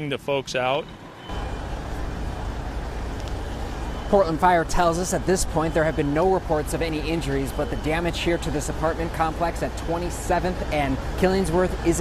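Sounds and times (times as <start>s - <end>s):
diesel engines humming: 0.6s - 12.0s.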